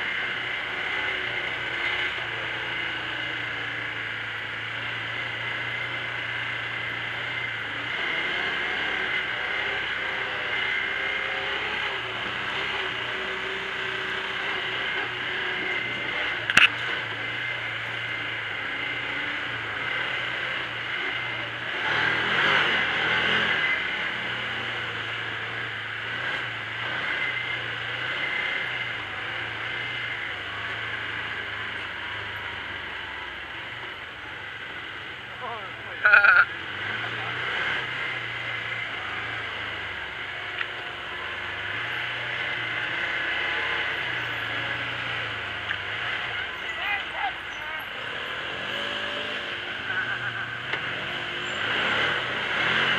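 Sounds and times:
vehicle engine running: 0.0 - 52.9.

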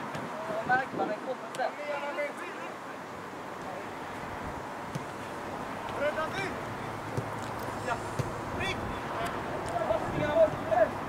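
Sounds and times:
wind noise: 0.0 - 1.4, 4.2 - 4.7, 7.2 - 11.0
distant shouts of football players: 7.8 - 11.0.

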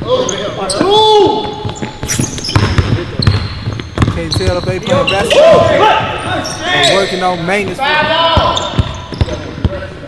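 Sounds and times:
basketball dribbling on court: 1.4 - 6.3, 8.0 - 9.8.

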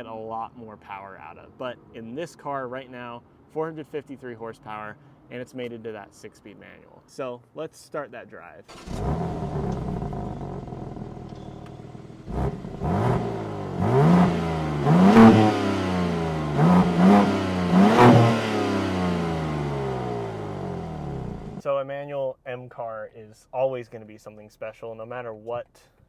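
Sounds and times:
car engine revving: 8.7 - 21.6.

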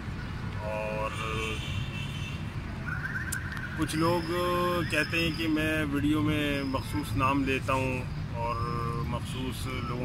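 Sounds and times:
man talking: 0.6 - 1.7, 3.8 - 10.0.

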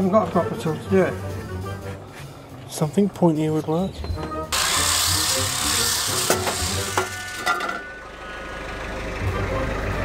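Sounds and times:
orbital sander on wood: 4.5 - 7.0.

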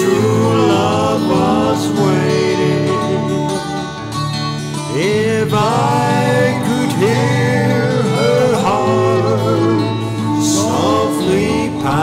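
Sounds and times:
guitar accompaniment: 0.0 - 12.0
man singing country ballad: 0.0 - 12.0.

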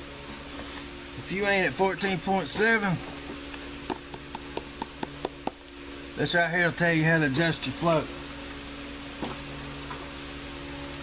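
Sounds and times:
fan humming: 0.0 - 11.0.

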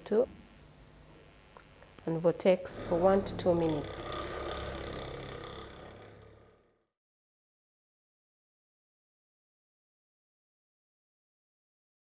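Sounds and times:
vortex mixer whirring hum: 2.5 - 6.7.

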